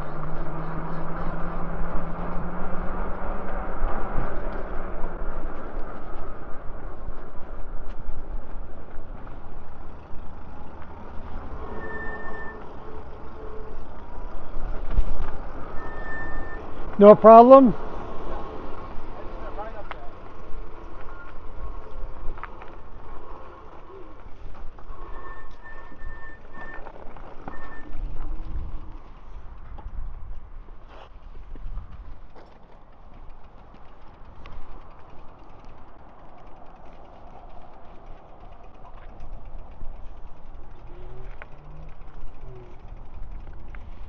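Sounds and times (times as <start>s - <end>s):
bike tyre noise on pavement: 0.0s - 44.0s
wind buffeting microphone: 27.8s - 44.0s.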